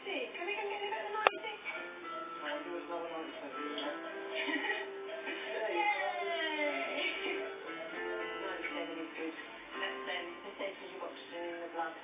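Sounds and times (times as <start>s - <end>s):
voice on television: 0.0s - 12.0s
background music: 1.2s - 12.0s.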